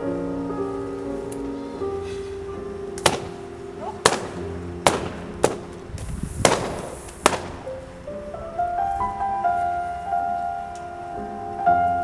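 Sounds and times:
background music with sustained notes: 0:00.0 - 0:12.0
balloons popping: 0:03.0 - 0:07.7.

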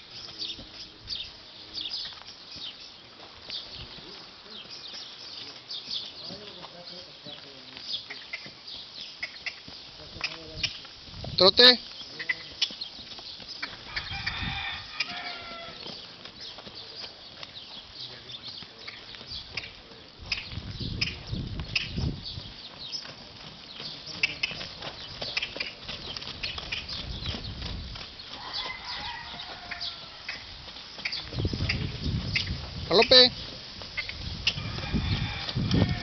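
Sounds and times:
horse hooves trotting on sand: 0:00.0 - 0:36.0
rooster crowing: 0:13.8 - 0:16.0, 0:28.3 - 0:30.5, 0:34.5 - 0:36.0.

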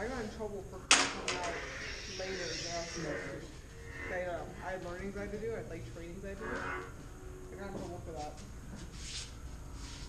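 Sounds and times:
lightsaber blades striking: 0:00.9 - 0:04.2.

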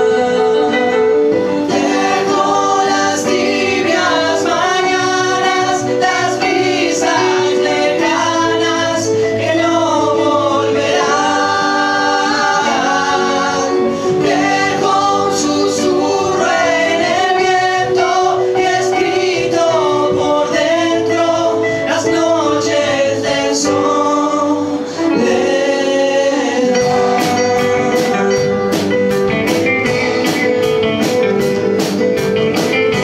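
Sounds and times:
upright double bass: 0:00.0 - 0:24.5, 0:25.1 - 0:33.0
male voices singing in harmony: 0:00.0 - 0:28.6
drums: 0:00.0 - 0:33.0
keyboard: 0:00.0 - 0:33.0
acoustic guitar: 0:24.6 - 0:33.0
electric guitar: 0:24.6 - 0:33.0.

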